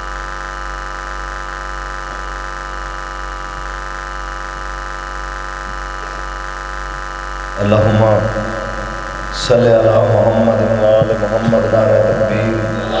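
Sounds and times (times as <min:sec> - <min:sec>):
public address system buzz: 0:07.6 - 0:13.0.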